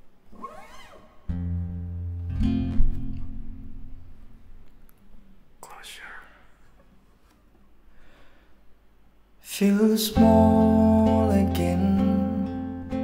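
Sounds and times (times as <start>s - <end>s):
acoustic guitar chords: 1.3s - 4.6s, 9.6s - 13.0s
sharp breath in: 7.9s - 8.7s.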